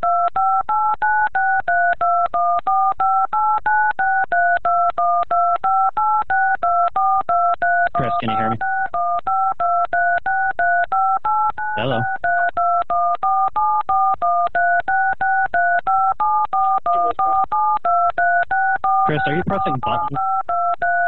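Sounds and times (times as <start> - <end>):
telephone touch-tone beeps: 0.0 - 21.0.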